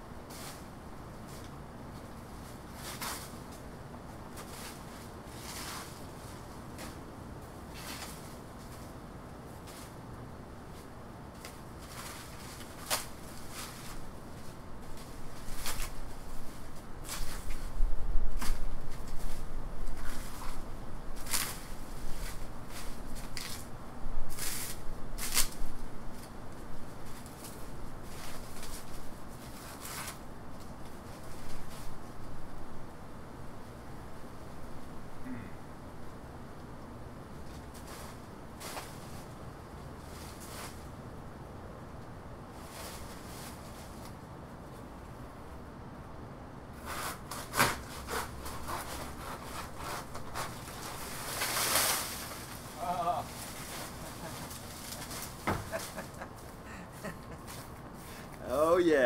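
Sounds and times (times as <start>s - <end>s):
dry leaves rustling and crackling: 0.3s - 32.8s, 37.3s - 41.0s, 42.4s - 44.9s, 47.2s - 59.0s
saw cutting wet plant trunk: 46.8s - 52.2s
dull thump: 55.4s - 55.8s.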